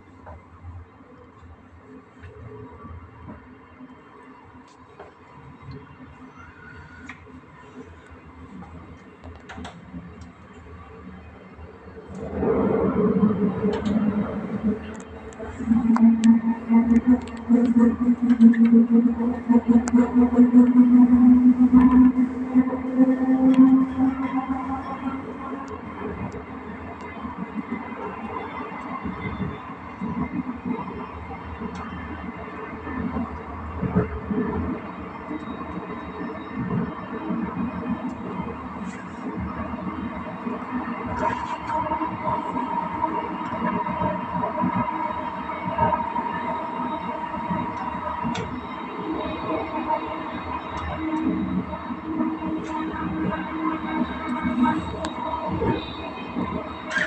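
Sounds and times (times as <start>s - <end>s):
train running rumble: 11.9s - 57.0s
high steady tone: 15.4s - 26.3s
wheels clicking on rails: 47.0s - 57.0s.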